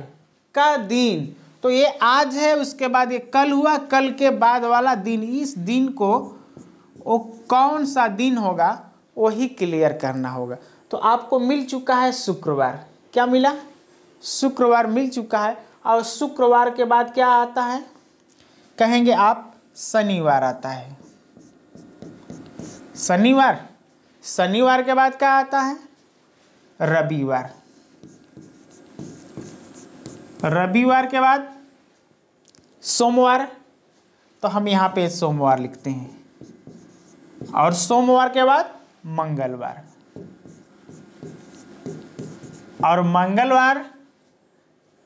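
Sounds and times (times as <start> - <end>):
pen writing on a board: 21.0 - 23.1, 28.0 - 30.5, 36.4 - 37.8, 39.9 - 42.7
stylus tapping and scratching: 21.0 - 23.1, 28.0 - 30.6, 36.4 - 37.9, 39.9 - 42.8
man talking: 37.5 - 40.0.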